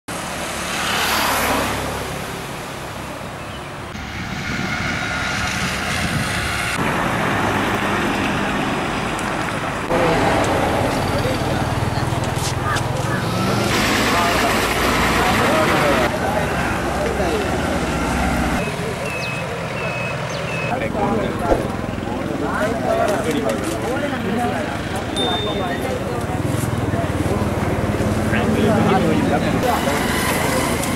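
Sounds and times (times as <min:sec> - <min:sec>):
road traffic passing: 0:00.1 - 0:30.9.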